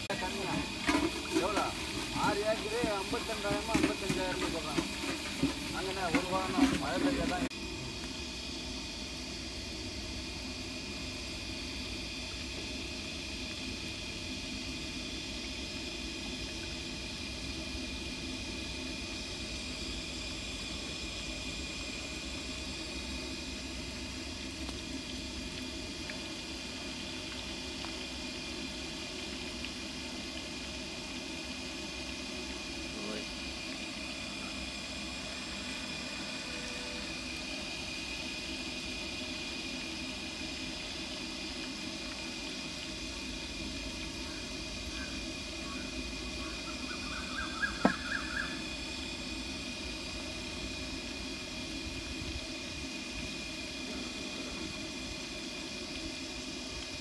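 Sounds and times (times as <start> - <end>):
hot oil sizzling: 0.0 - 57.0.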